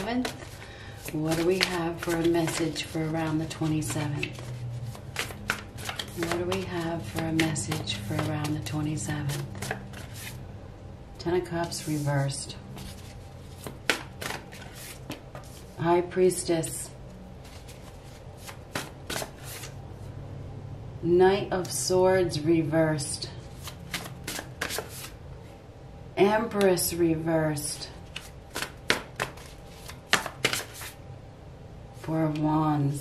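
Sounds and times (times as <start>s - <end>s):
cards clicking and sliding: 0.0s - 8.6s, 9.3s - 10.3s, 12.8s - 15.6s, 17.5s - 19.7s, 23.6s - 25.2s, 28.1s - 31.0s
cards snapping and sliding: 3.7s - 8.6s, 23.6s - 25.1s, 28.1s - 30.9s.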